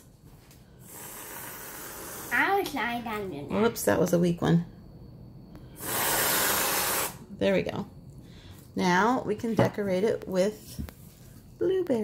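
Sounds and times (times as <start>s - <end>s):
aerosol whipped cream can hissing: 0.8s - 2.4s, 5.8s - 7.2s.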